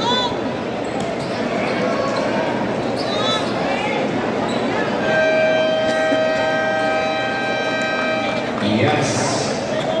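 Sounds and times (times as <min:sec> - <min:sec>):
crowd noise: 0:00.0 - 0:10.0
scoreboard horn: 0:05.0 - 0:08.6.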